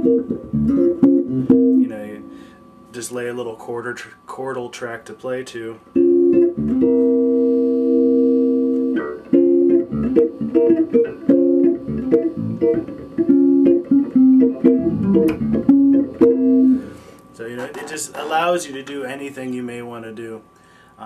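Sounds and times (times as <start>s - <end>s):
electric bass chords and notes: 0.0s - 2.6s, 5.9s - 17.1s.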